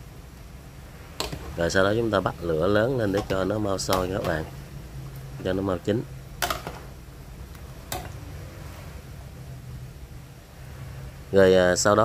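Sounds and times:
steady low hum: 0.0 - 12.0
metal ladle clicking on pot: 1.2 - 1.5, 3.1 - 4.6, 6.4 - 6.9, 7.9 - 8.2.

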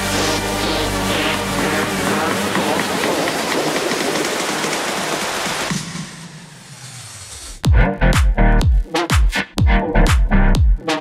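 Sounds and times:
electronic music: 0.0 - 11.0.

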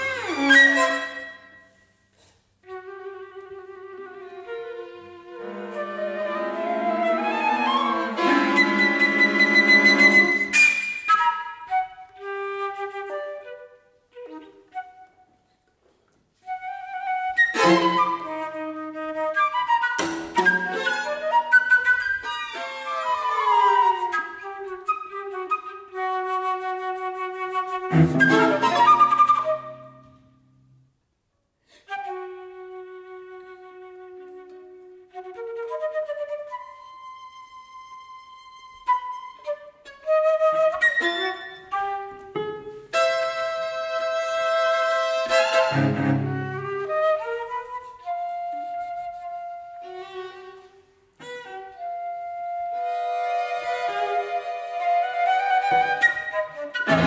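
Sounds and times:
flute phrases and glissandi: 0.0 - 15.6, 16.3 - 31.0, 31.7 - 57.0.

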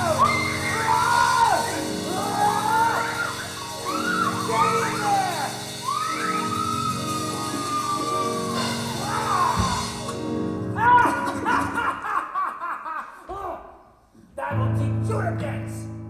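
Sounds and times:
gliding lead melody: 0.0 - 10.8
low keyboard chords: 0.0 - 11.8.

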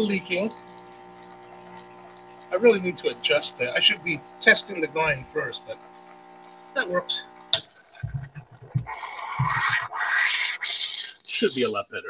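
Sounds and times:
espresso machine hissing: 0.0 - 7.6, 8.2 - 11.7.

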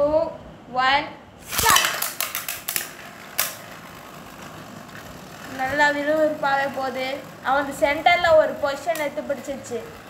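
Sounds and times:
spinning tops clattering in metal pan: 1.4 - 10.0
spinning tops whirring: 1.4 - 10.0.

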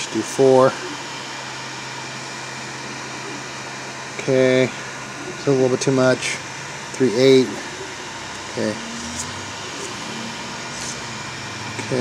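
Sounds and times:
cooling fans whirring: 0.0 - 12.0
faint whine: 0.0 - 12.0.

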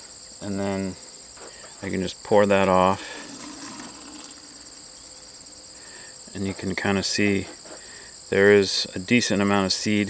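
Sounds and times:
crickets trilling: 0.0 - 10.0.

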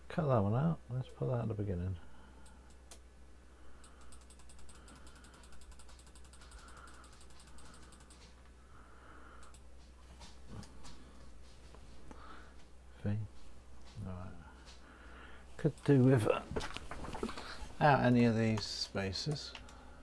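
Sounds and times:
mouse scroll wheel clicking: 3.8 - 8.4.

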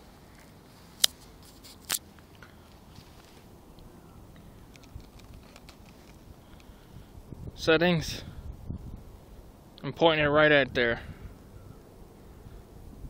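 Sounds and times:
low hiss: 0.0 - 13.0
faint small ticks: 3.2 - 6.8.

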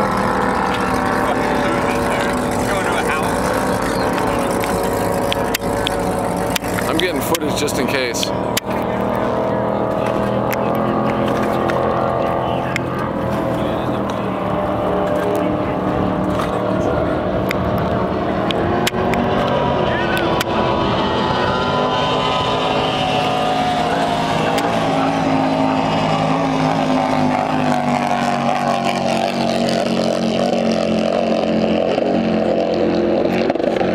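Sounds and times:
motorboat engine running: 0.0 - 33.9.

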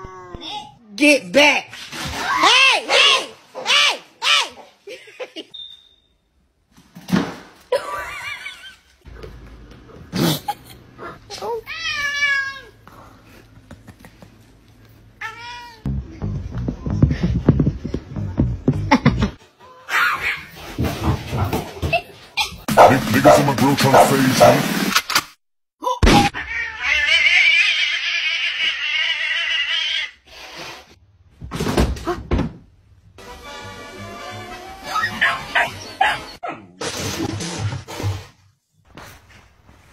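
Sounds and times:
heavy thumps: 15.9 - 19.4
cat meowing: 26.4 - 30.1.

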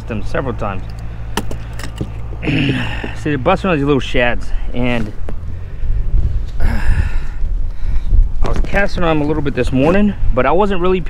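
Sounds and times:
wind and handling rumble: 0.0 - 11.0
breathy rush of noise: 4.4 - 8.4.

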